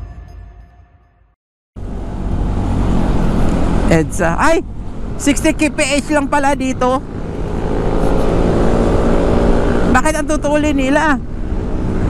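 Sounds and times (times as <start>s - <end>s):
scooter engine running: 1.8s - 12.0s.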